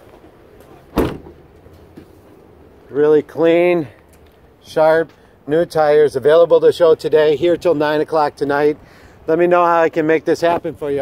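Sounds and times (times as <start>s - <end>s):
car liftgate slamming shut: 0.9s - 1.4s.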